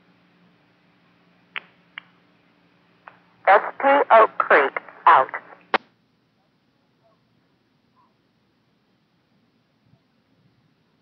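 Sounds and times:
faint steady hum: 0:00.0 - 0:11.0
radio clicks: 0:03.0 - 0:05.9
unintelligible radio voice: 0:03.5 - 0:05.8.

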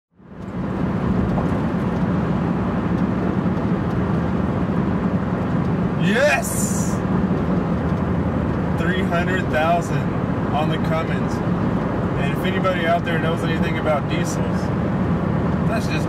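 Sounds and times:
engine and road drone: 0:00.1 - 0:16.0.

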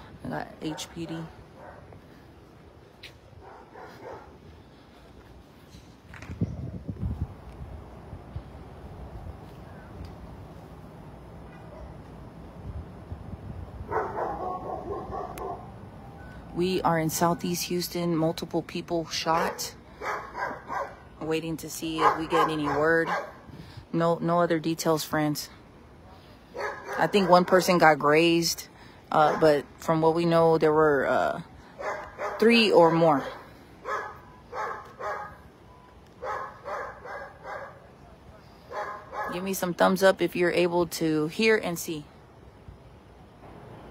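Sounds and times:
dogs barking: 0:01.6 - 0:02.0, 0:03.4 - 0:04.4, 0:13.9 - 0:15.7, 0:19.3 - 0:21.1, 0:22.0 - 0:23.4, 0:26.5 - 0:27.6, 0:31.8 - 0:35.4, 0:36.2 - 0:37.9, 0:38.7 - 0:39.4.

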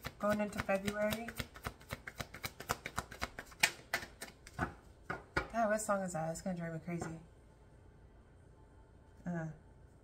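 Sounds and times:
cards being shuffled: 0:00.0 - 0:04.7.

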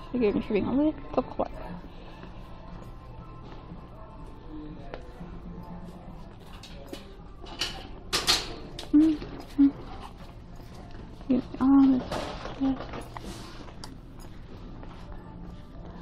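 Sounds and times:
person humming briefly: 0:08.9 - 0:09.9.

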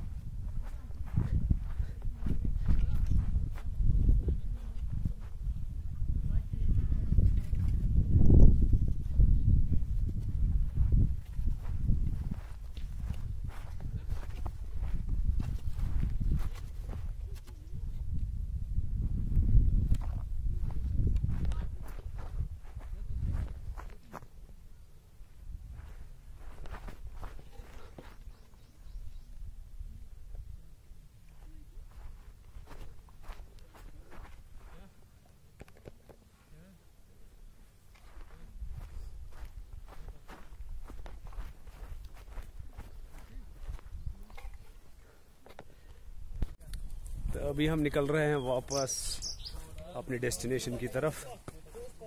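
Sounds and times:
footsteps on grass: 0:00.0 - 0:05.5, 0:09.8 - 0:17.5, 0:19.7 - 0:24.4, 0:25.5 - 0:28.7, 0:31.4 - 0:35.0, 0:37.9 - 0:52.0
low wind rumble on microphone: 0:00.0 - 0:34.8, 0:38.0 - 0:45.2, 0:46.0 - 0:48.0.

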